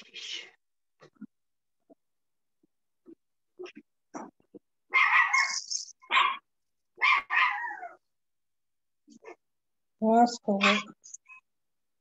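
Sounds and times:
dog barking: 6.1 - 6.4.

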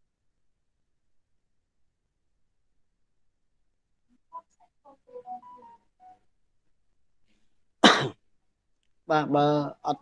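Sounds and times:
man coughing: 7.8 - 8.2.

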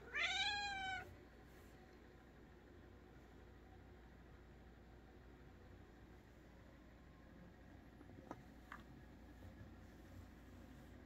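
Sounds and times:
cat meowing: 0.0 - 1.1.

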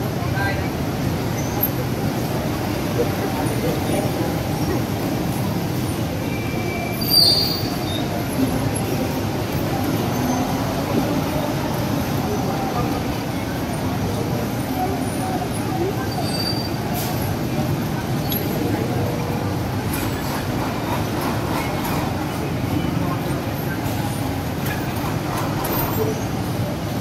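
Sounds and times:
city traffic rumble: 0.0 - 27.0
high squeal: 6.2 - 8.2.

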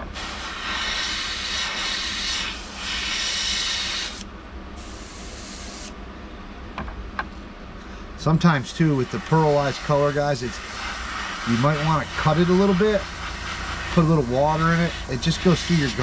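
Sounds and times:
airbrush spraying hiss: 0.0 - 4.2, 4.8 - 6.0, 8.7 - 16.0.

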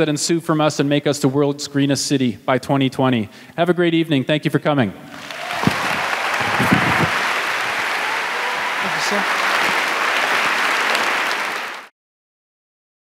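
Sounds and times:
audience applauding: 5.1 - 11.9.

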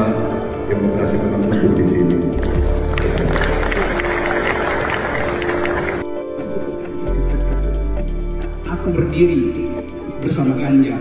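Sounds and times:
background music with bass: 0.0 - 11.0
audience applauding: 2.4 - 6.2.

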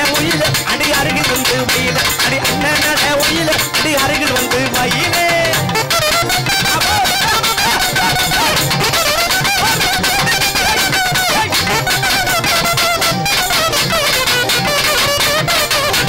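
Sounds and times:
fast dense drum beat: 0.0 - 15.9
nadaswaram melody: 0.0 - 16.0.

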